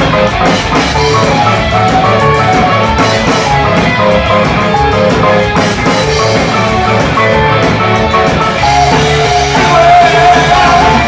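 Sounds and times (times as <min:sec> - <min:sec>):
drum kit steady rhythm: 0:00.0 - 0:11.0
electric guitar: 0:00.0 - 0:11.0
live rock band: 0:00.0 - 0:11.0.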